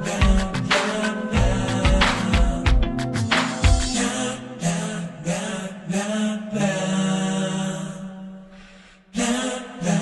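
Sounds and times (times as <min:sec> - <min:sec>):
pop song with held sung notes: 0:00.0 - 0:10.0.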